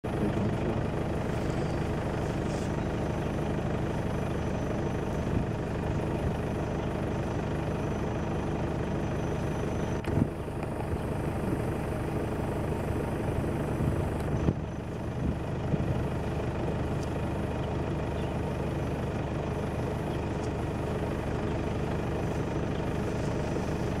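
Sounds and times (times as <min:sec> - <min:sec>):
car engine idling: 0:00.0 - 0:24.0.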